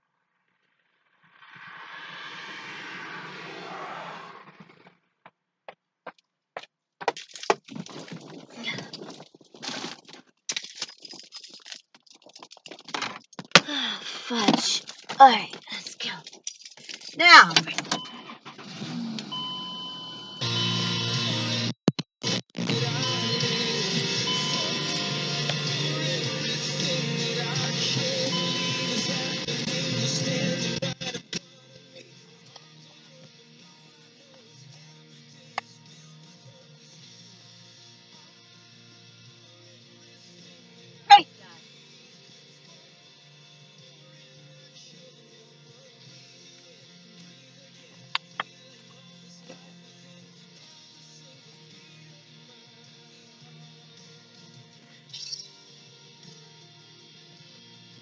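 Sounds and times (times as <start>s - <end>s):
loud music: 20.4s - 31.0s.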